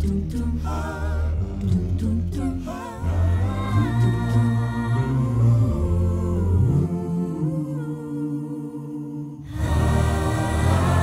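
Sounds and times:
deep sung bass line: 0.0s - 8.0s
humming vocal chords: 0.0s - 11.0s.

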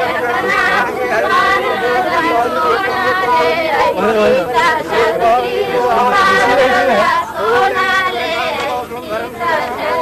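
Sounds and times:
indistinct group chatter: 0.0s - 10.0s.

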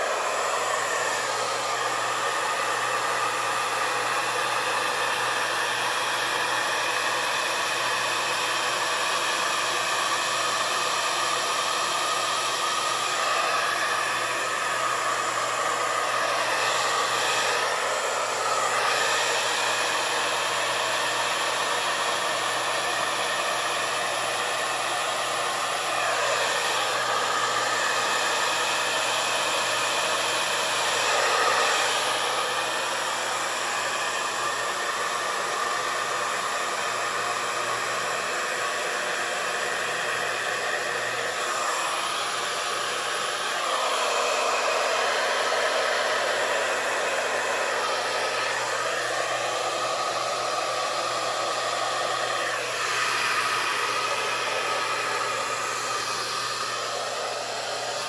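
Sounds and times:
hair dryer blowing: 0.0s - 58.0s.

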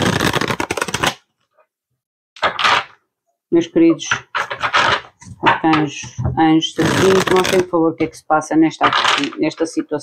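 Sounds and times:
cards being shuffled: 0.0s - 1.2s, 2.4s - 3.0s, 4.1s - 5.9s, 6.8s - 7.8s, 8.8s - 9.7s.

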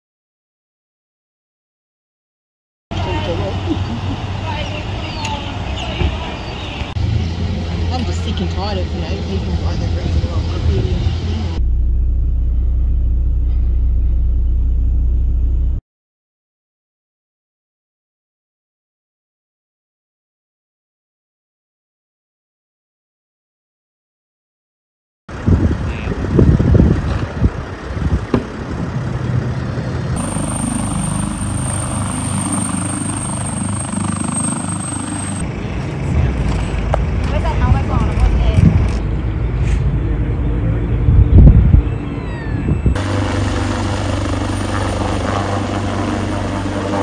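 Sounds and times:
helicopter overhead: 2.9s - 12.0s, 25.3s - 47.0s.

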